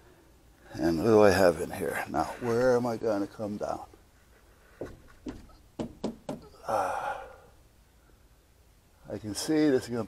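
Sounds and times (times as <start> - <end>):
hand knocking on plastic trim: 4.8 - 6.5.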